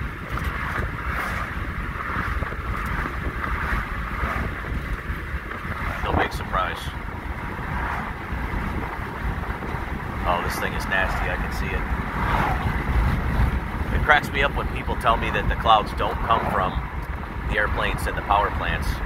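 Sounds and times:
road noise: 0:00.0 - 0:19.0
vehicle engine drone: 0:00.0 - 0:19.0
wind rushing: 0:00.0 - 0:19.0.

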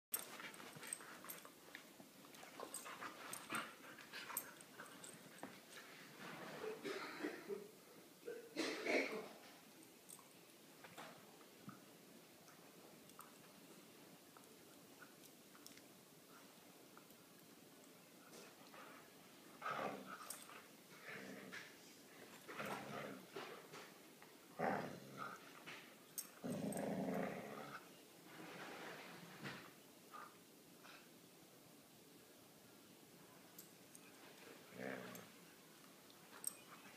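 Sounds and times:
dogs scuffling and mouthing: 0:00.1 - 0:06.8, 0:09.4 - 0:27.9, 0:33.4 - 0:36.9
dog growling: 0:24.6 - 0:25.4, 0:26.4 - 0:27.8, 0:34.6 - 0:35.3.

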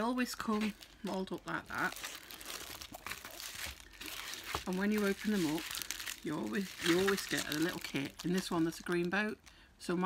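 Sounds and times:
wrapping crinkling and rustling: 0:00.0 - 0:10.0.

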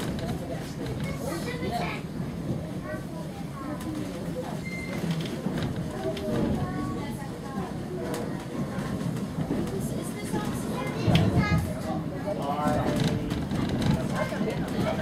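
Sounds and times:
passengers chattering: 0:00.0 - 0:15.0
train rumbling on track: 0:00.0 - 0:15.0.

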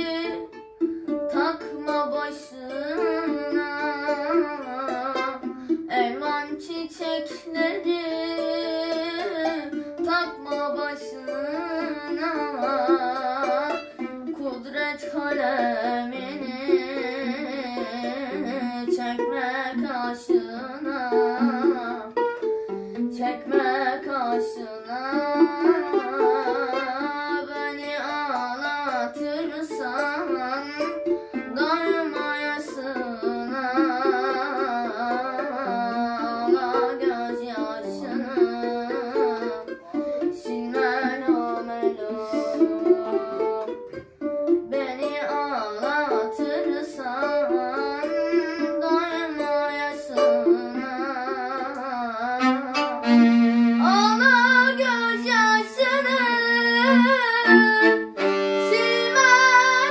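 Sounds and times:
solo violin melody: 0:00.0 - 0:59.9.

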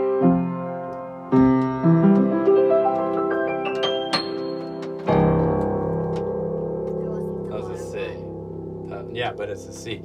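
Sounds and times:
piano chord ringing: 0:00.0 - 0:10.0.

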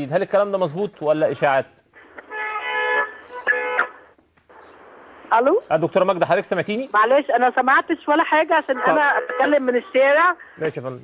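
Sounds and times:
vehicle horn over telephone line: 0:02.4 - 0:03.9.

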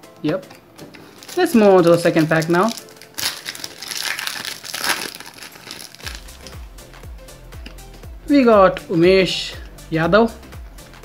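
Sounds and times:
background music with low beat: 0:00.0 - 0:05.0, 0:06.0 - 0:11.0
foil wrapper crinkling and tearing: 0:01.0 - 0:06.6.

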